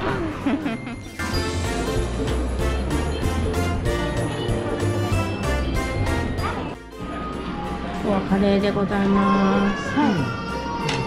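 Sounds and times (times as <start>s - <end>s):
upbeat background music: 0.3s - 8.8s.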